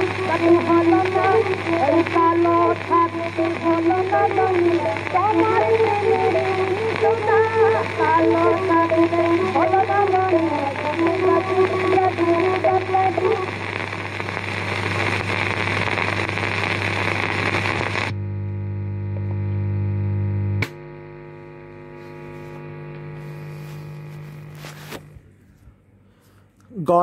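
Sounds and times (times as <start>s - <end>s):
mains hum: 0.0s - 27.0s.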